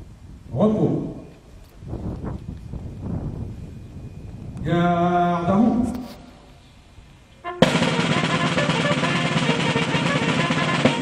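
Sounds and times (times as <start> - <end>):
snare drum roll: 7.6 - 11.0.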